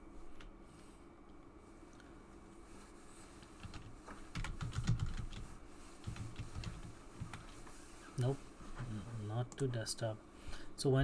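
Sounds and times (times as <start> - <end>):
typing on computer keyboard: 3.6 - 5.4.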